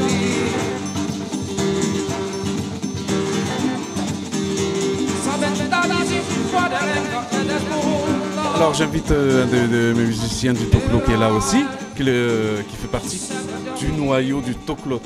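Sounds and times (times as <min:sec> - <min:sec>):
person singing: 0:00.0 - 0:01.1, 0:05.1 - 0:15.0
hand drums: 0:00.0 - 0:14.0
drum kit: 0:00.0 - 0:14.2
acoustic guitar: 0:00.0 - 0:15.0.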